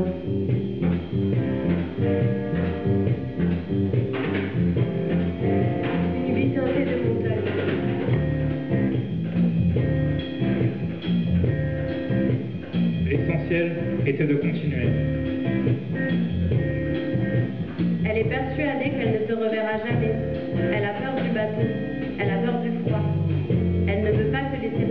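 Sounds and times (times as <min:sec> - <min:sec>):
bass guitar line: 0:00.0 - 0:24.9
electric guitar notes: 0:00.0 - 0:24.9.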